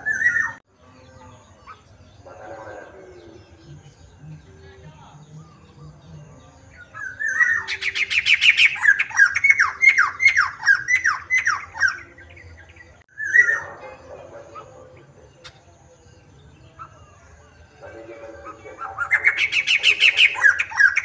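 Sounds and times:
bird singing whistled notes: 0.0s - 21.0s.

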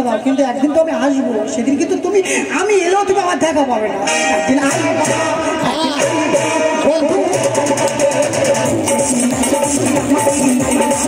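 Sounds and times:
plucked-string melody: 4.0s - 9.7s
steady percussion beat: 4.1s - 11.0s.

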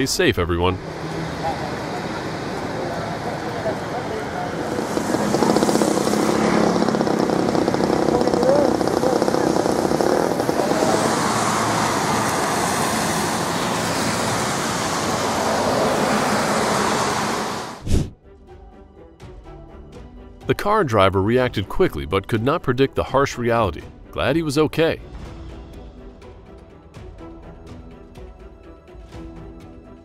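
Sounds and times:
traffic on a wet road: 0.8s - 17.8s
faint voices: 1.2s - 5.7s
sudden thump: 17.8s - 18.2s.

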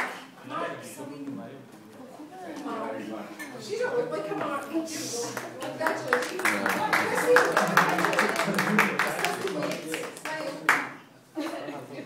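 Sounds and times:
people talking: 3.5s - 12.0s
hand clapping: 5.3s - 11.0s.

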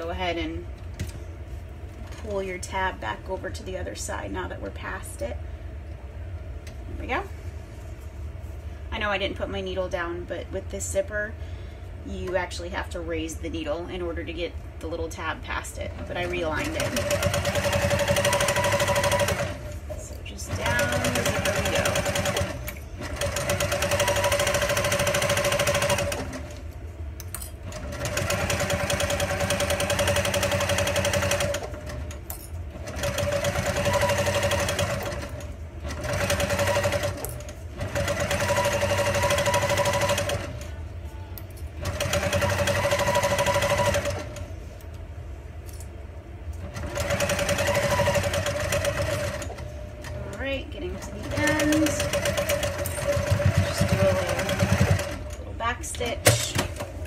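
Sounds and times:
sewing machine stitching: 16.0s - 19.7s, 20.4s - 26.6s, 27.6s - 40.7s, 41.8s - 44.4s, 46.6s - 55.4s.

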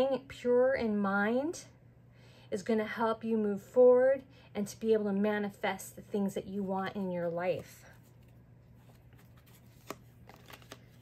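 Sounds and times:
cards being handled: 7.6s - 11.0s.

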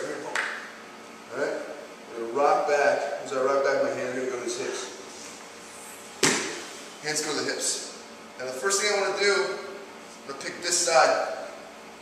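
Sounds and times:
body thudding on mat: 6.2s - 6.7s.

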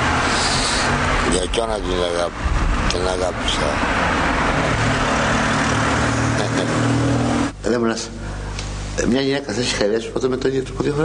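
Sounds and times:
street traffic: 0.0s - 9.0s
vehicle engine running: 0.0s - 9.0s
steady low hum: 0.0s - 11.0s.

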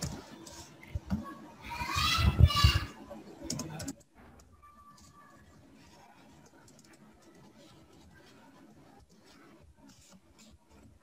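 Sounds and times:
computer keyboard typing: 3.4s - 4.1s, 5.0s - 8.4s.

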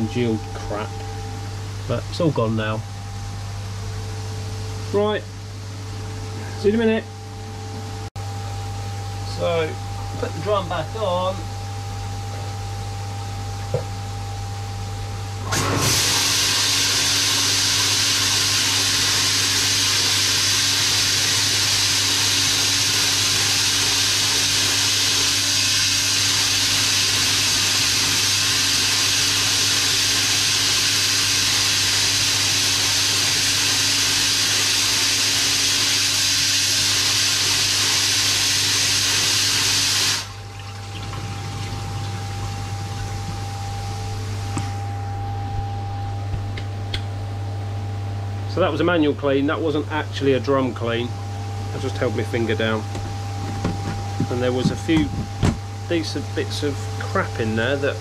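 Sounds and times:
low electrical hum: 0.0s - 58.0s
waste water running: 15.5s - 44.6s.

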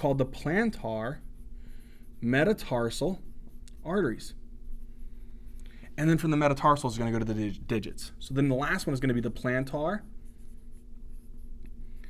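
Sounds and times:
low steady hum: 0.0s - 12.0s
marker writing on a whiteboard: 0.0s - 12.0s.

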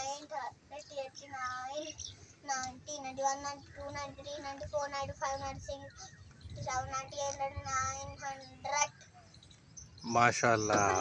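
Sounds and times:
child counting aloud: 0.0s - 9.0s.

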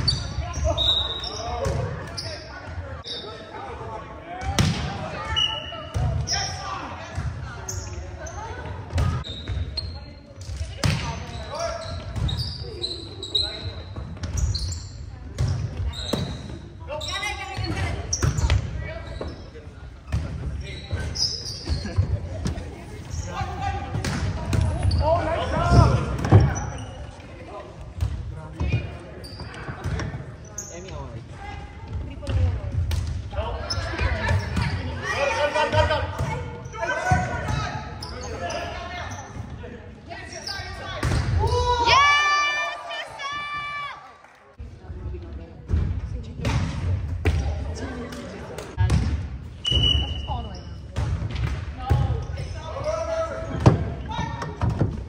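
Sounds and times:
players shouting: 40.9s - 44.1s.

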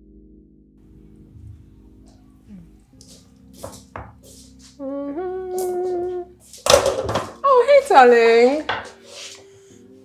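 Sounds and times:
person humming: 2.3s - 3.1s, 4.7s - 6.4s.

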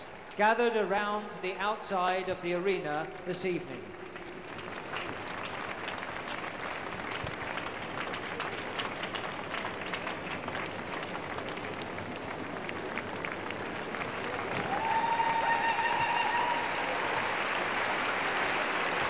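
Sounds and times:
large audience applauding: 3.5s - 19.0s.

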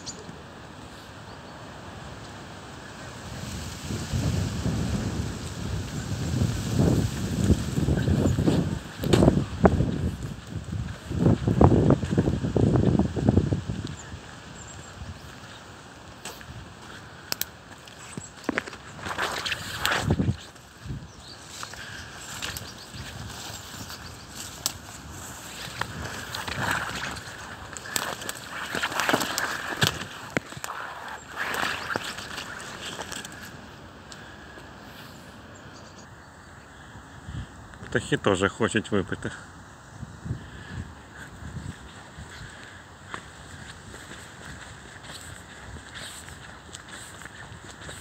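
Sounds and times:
outdoor background noise: 0.0s - 48.0s
twigs and leaves crackling: 2.2s - 35.3s, 41.0s - 48.0s
footsteps on wet path: 3.2s - 35.4s, 41.1s - 48.0s.

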